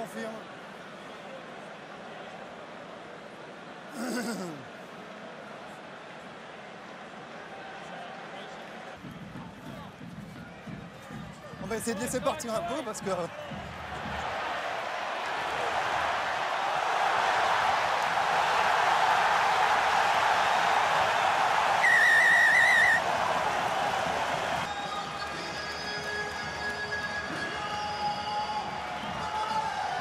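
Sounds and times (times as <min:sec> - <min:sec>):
stadium crowd cheering: 0:00.0 - 0:30.0
referee whistle trilling: 0:21.8 - 0:23.0.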